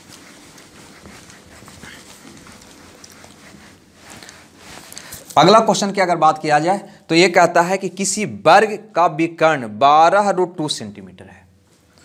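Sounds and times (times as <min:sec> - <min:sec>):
duster rubbing a whiteboard: 0:00.0 - 0:05.6.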